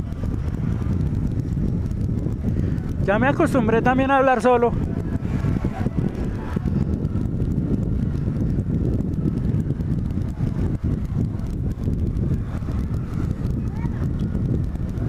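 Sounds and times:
motorcycle engine rumble: 0.0 - 15.0
wind noise on microphone: 0.0 - 15.0.

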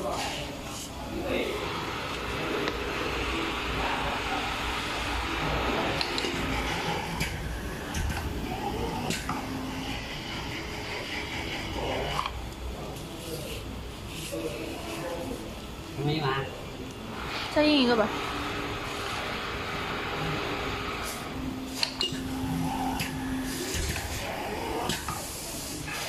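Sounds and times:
pneumatic machine hissing: 18.3 - 26.0.

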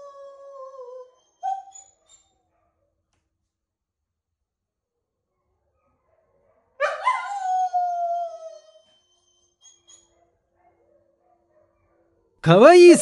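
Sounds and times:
dog howling: 6.8 - 8.9.

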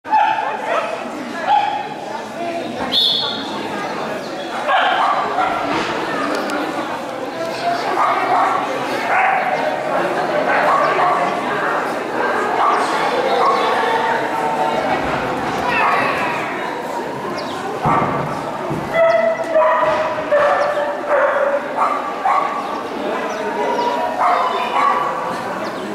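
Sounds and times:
people talking: 0.1 - 25.9.

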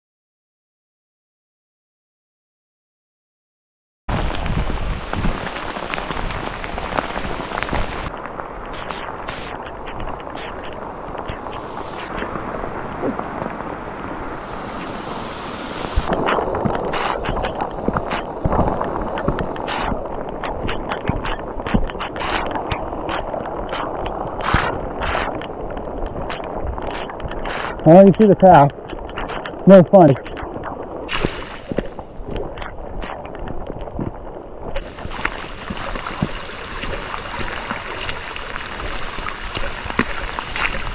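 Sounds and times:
heavy rain falling: 4.1 - 40.9
raindrops tapping on camera: 4.1 - 40.9.

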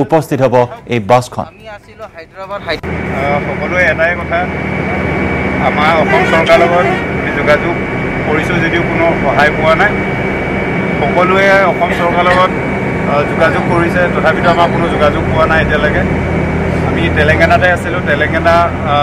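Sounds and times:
man talking: 0.0 - 10.0, 11.0 - 16.2, 16.8 - 19.0
bus engine drone from inside: 1.8 - 19.0.

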